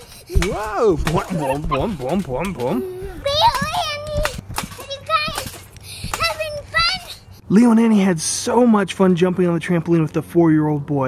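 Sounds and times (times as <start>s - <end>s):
soft trampoline thumps: 0.3s - 6.4s.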